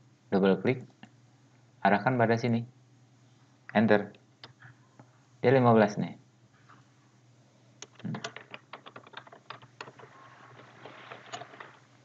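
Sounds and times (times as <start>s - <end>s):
computer keyboard typing: 7.8s - 11.9s.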